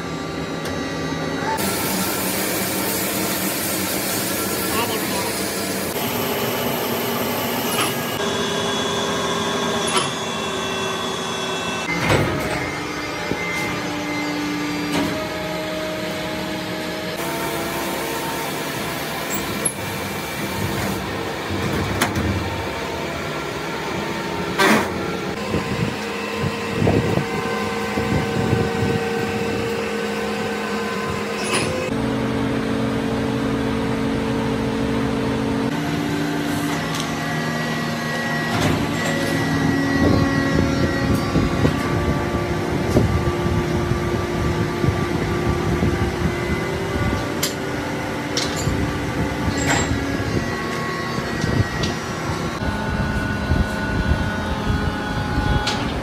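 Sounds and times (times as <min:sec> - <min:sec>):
workshop machinery hum: 0:00.0 - 0:56.0.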